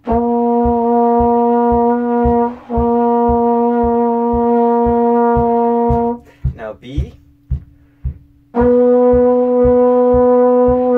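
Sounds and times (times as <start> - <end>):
trombone long tone: 0.0 - 6.2, 8.5 - 10.9
low regular thump: 0.0 - 10.9.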